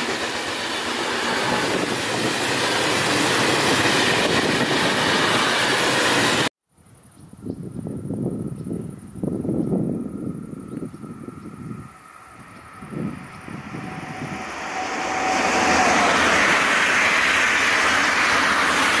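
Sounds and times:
train rumbling: 0.0s - 6.5s, 8.3s - 19.0s
train wheels rushing on rail: 0.0s - 6.5s, 9.6s - 19.0s.

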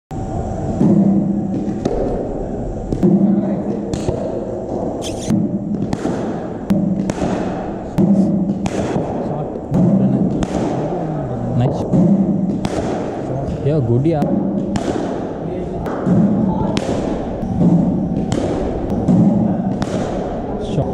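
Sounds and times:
cricket bat striking ball: 0.7s - 2.3s, 2.9s - 11.0s, 11.8s - 13.4s, 14.2s - 20.4s
balls thudding into nets: 2.9s - 11.0s, 11.8s - 13.2s, 14.2s - 20.8s.

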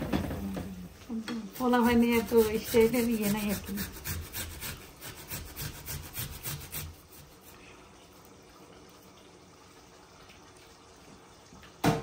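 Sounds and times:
root rasping on metal grater: 1.6s - 7.5s.

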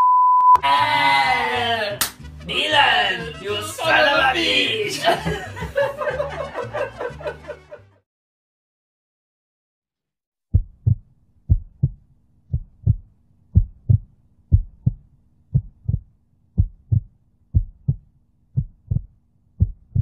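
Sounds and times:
heartbeat thuds: 10.5s - 20.0s.

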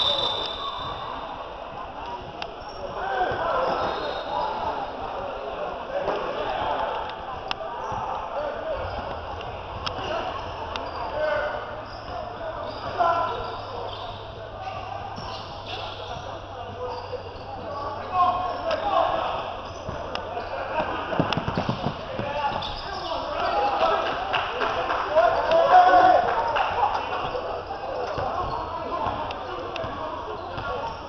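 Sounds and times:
shouts and chatter echoing: 0.0s - 31.0s
basketball bouncing on hardwood: 21.2s - 22.3s.

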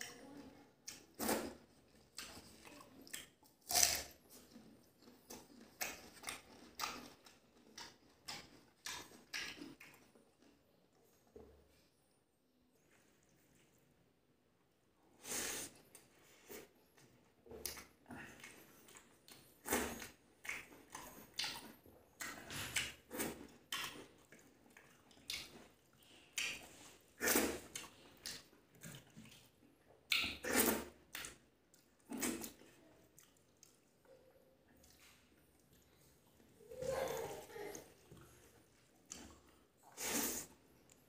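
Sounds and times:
wet chewing and lip smacks: 0.8s - 11.4s, 15.9s - 36.5s, 37.7s - 41.0s.

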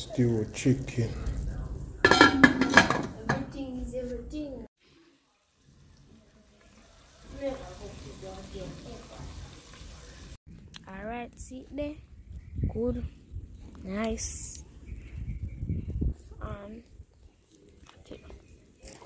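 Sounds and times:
people talking: 0.0s - 4.7s, 6.0s - 12.0s, 12.7s - 13.1s, 13.8s - 14.6s, 16.3s - 16.9s
pot lid clanking on metal pot: 2.0s - 3.5s.

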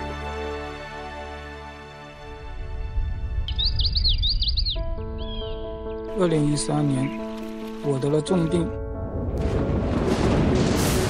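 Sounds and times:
soft sustained music notes: 0.0s - 11.0s
birds chirping: 3.0s - 7.8s.

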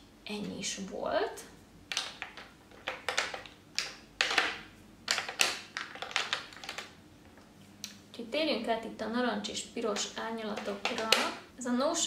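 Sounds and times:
plastic tubes clicking and clattering: 1.9s - 7.4s, 9.9s - 11.4s.

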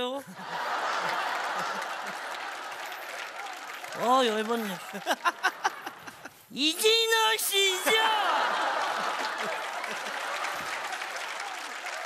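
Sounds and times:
audience applauding: 0.4s - 6.3s, 6.9s - 12.0s.

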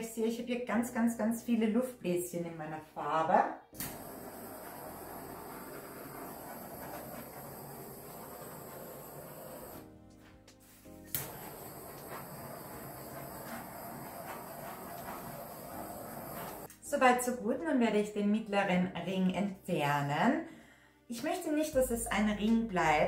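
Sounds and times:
background music: 0.0s - 23.0s
gas torch hissing: 3.8s - 9.9s, 10.9s - 16.7s.

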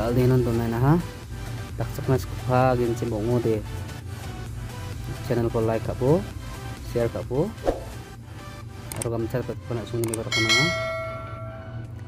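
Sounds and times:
bell-like chime: 10.3s - 12.0s.

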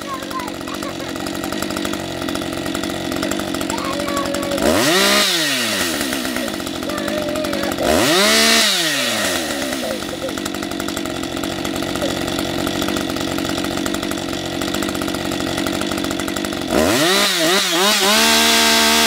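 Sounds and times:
chainsaw revving and idling: 0.0s - 19.0s.

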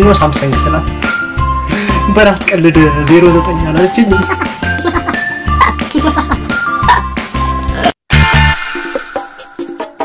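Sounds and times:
high melody over bass beat: 1.4s - 10.0s.

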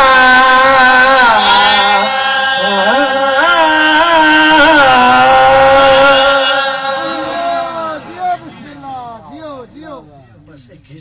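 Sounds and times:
man chanting a long note: 0.0s - 9.7s.

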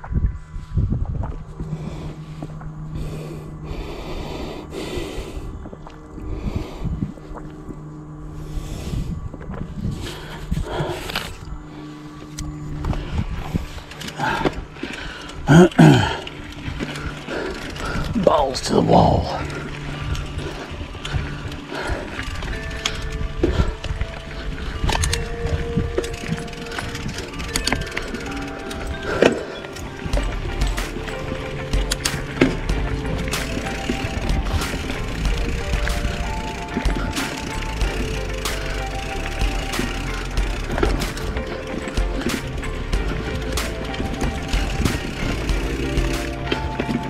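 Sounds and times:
low steady hum: 0.0s - 47.0s
low wind rumble: 0.0s - 47.0s
tyre and trail noise: 0.0s - 47.0s
person breathing: 1.6s - 7.4s, 10.0s - 12.4s, 13.0s - 18.2s, 19.4s - 25.0s
bike freehub ratchet clicking: 13.8s - 18.2s, 19.4s - 47.0s.

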